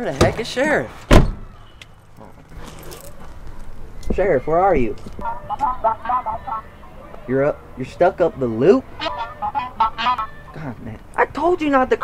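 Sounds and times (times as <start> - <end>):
car door slamming: 1.1 - 1.5.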